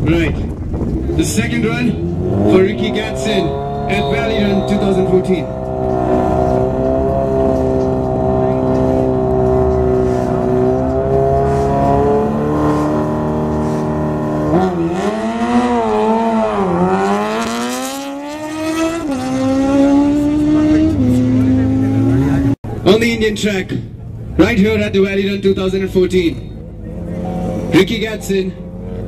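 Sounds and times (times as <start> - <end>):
motorcycle engine revving: 0.0 - 22.7, 26.5 - 29.0.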